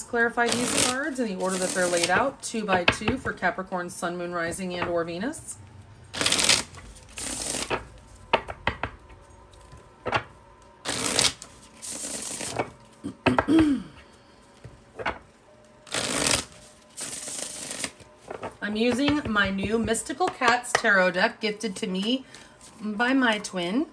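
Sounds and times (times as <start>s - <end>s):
cards riffling: 6.1s - 8.1s, 10.8s - 13.0s, 15.9s - 18.5s.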